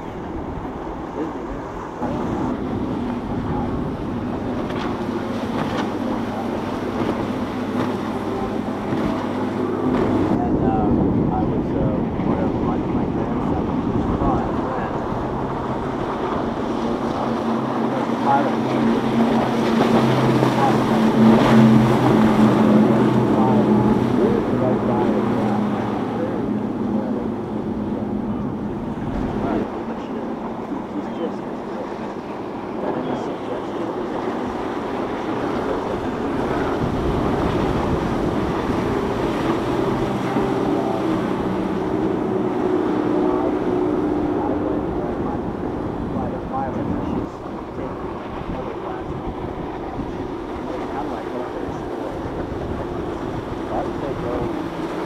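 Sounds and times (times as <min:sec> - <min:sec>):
motorboat engine drone: 0:00.0 - 0:55.0
water wash: 0:00.0 - 0:55.0
wind on microphone: 0:00.0 - 0:55.0.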